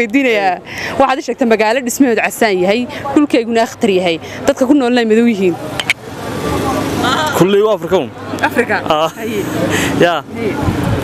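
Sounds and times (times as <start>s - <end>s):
people talking: 0.0s - 11.0s
street noise: 0.0s - 11.0s.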